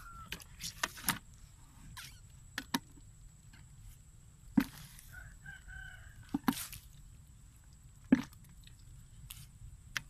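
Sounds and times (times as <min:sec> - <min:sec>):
rooster crowing faintly: 0:05.0 - 0:06.8.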